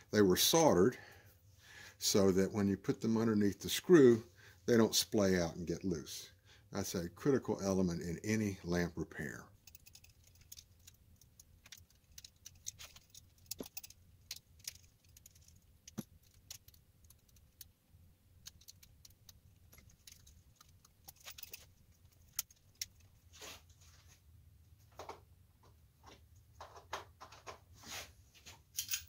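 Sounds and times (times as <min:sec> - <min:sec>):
small brass parts clicking: 0:09.6 - 0:17.8, 0:18.4 - 0:23.1, 0:28.8 - 0:29.0.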